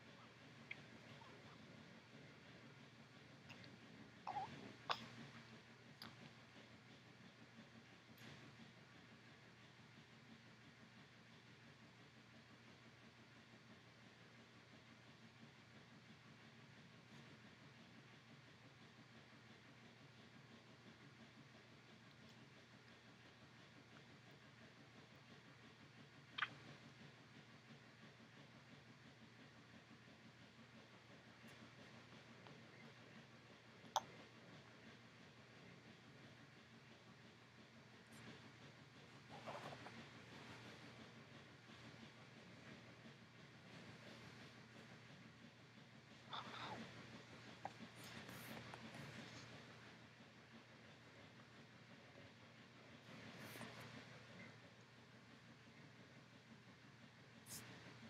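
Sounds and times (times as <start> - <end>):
faint low hum: 0.0 - 58.0.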